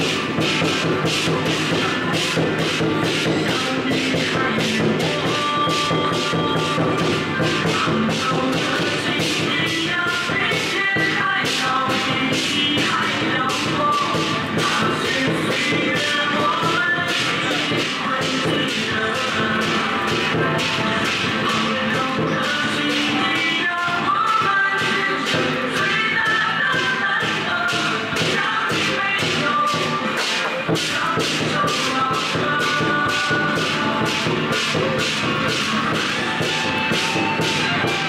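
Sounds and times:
procession music: 29.8 - 38.0.

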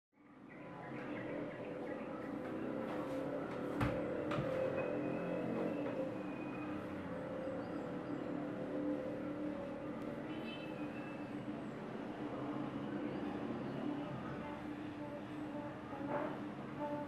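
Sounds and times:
steady low hum: 0.2 - 17.0.

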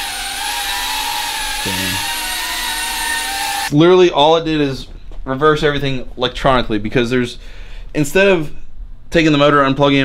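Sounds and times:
quadcopter motors whining: 0.0 - 3.7
man talking: 1.6 - 2.1.

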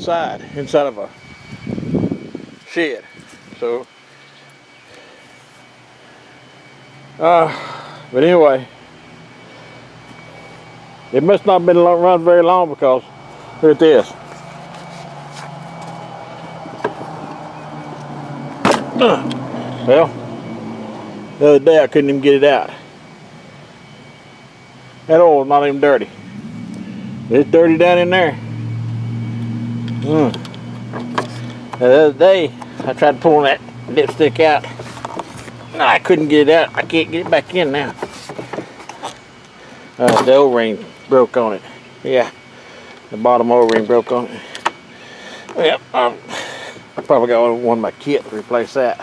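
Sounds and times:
low mechanical hum: 0.0 - 49.0.

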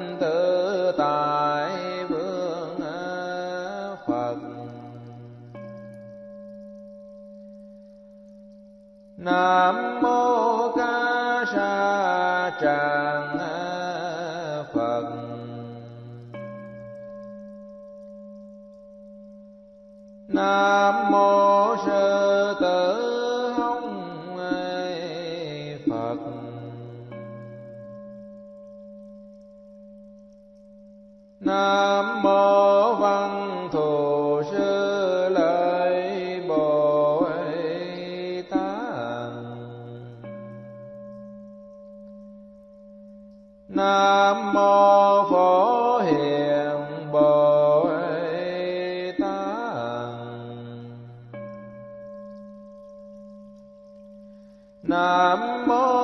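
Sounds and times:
steady held tones: 0.0 - 56.0.

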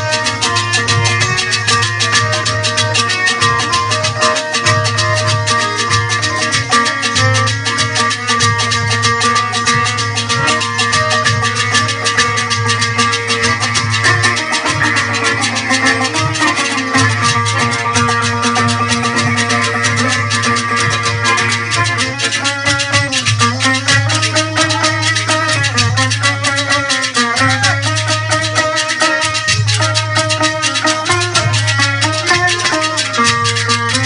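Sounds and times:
hand drum beat: 0.0 - 34.0
sitar: 0.0 - 34.0.

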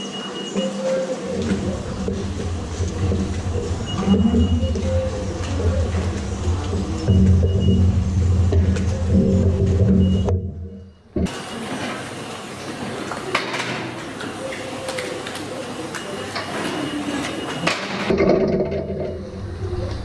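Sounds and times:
low droning hum: 1.2 - 11.3, 18.5 - 20.0.

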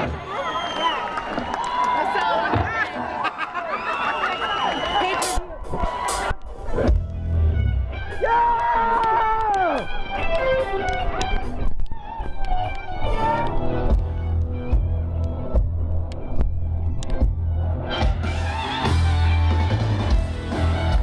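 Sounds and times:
live rock band playing: 4.9 - 21.0
heavy bass beat: 5.1 - 10.0
sustained lead guitar notes: 6.5 - 21.0.

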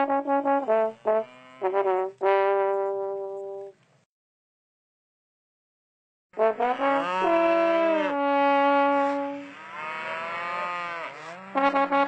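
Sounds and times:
cow mooing: 0.6 - 2.1, 6.5 - 12.0.

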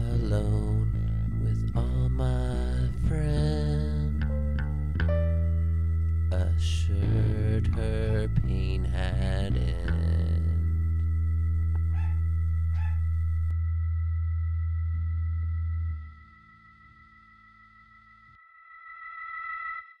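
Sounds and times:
distorted guitar chord ringing: 0.0 - 18.4
faint high-pitched tone: 0.0 - 20.0.

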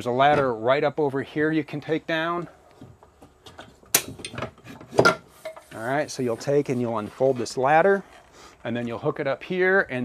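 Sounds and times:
ladder scraping on fittings: 4.2 - 8.4.

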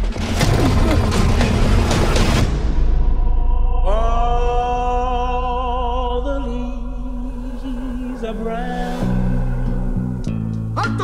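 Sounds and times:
heavy low rumble: 2.4 - 10.8.

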